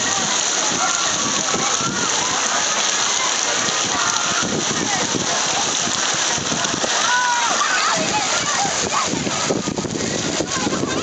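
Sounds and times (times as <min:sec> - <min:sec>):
faint children calling: 0:00.0 - 0:05.8, 0:06.7 - 0:11.0
water rushing and splashing: 0:00.0 - 0:11.0.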